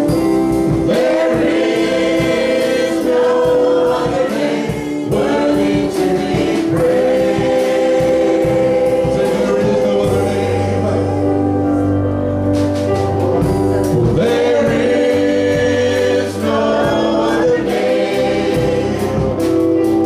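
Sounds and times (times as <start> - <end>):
worship band and singers: 0.0 - 20.0.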